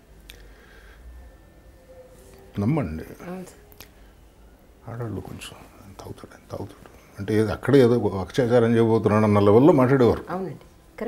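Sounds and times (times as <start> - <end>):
man speaking softly: 4.8 - 10.2.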